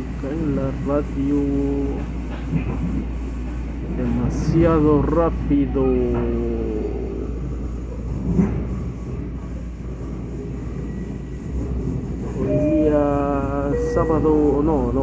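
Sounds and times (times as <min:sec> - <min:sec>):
train rumbling on rails: 0:00.0 - 0:15.0
person singing long note: 0:12.5 - 0:13.0, 0:13.6 - 0:14.5.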